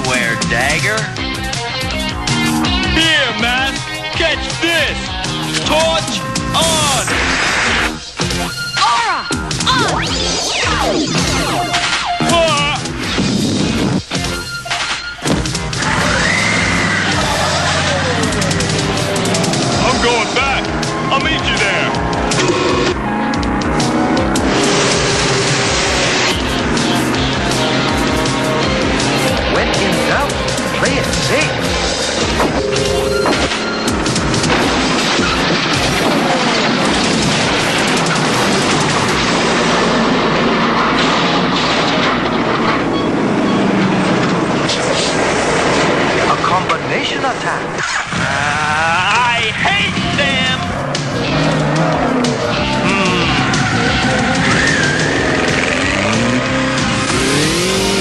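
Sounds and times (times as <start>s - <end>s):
cartoon soundtrack music: 0.0s - 40.2s, 48.1s - 58.0s
warbling sound effects: 9.7s - 12.2s
rubble crashing down: 34.2s - 43.1s
person's voice: 52.8s - 53.4s.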